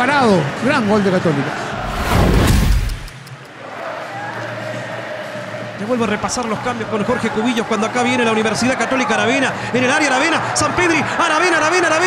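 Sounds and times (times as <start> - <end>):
murmur of stadium crowd: 0.0 - 12.0
whoosh with deep boom: 1.7 - 3.2.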